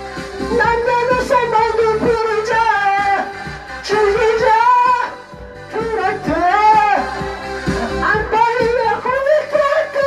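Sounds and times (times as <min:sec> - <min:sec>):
karaoke backing track: 0:00.0 - 0:10.0.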